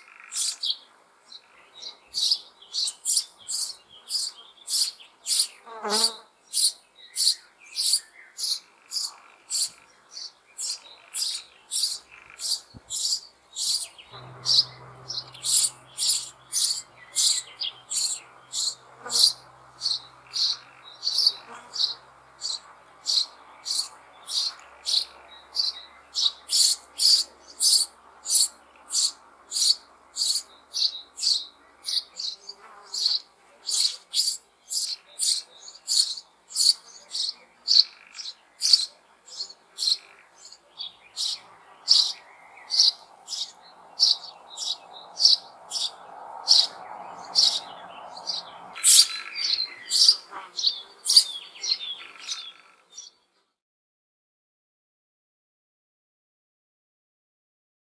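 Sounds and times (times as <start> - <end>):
chicks chirping high: 0.4 - 0.7, 2.1 - 5.5, 6.5 - 39.0, 39.8 - 40.0, 41.2 - 53.1.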